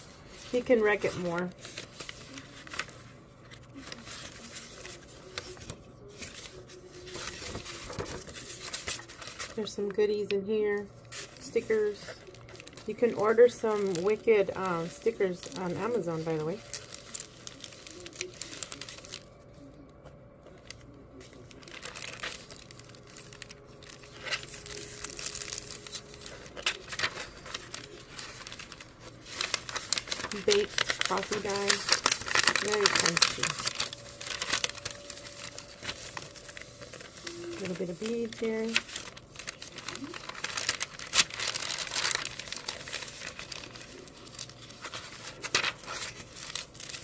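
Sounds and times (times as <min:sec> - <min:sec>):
plastic bag crinkling: 0:00.0 - 0:19.7, 0:20.5 - 0:47.0
paper pages rustling: 0:00.0 - 0:47.0.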